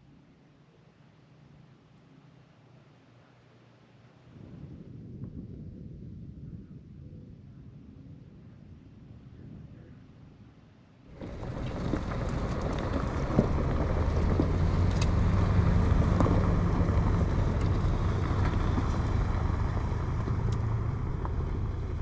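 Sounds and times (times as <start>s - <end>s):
wind noise on microphone: 4.2s - 22.0s
road rumble: 11.0s - 22.0s
vehicle engine drone: 11.1s - 22.0s.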